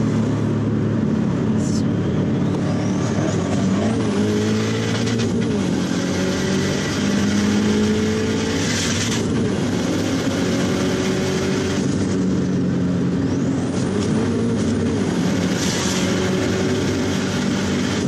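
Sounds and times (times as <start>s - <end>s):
car engine revving from inside: 1.1s - 18.0s.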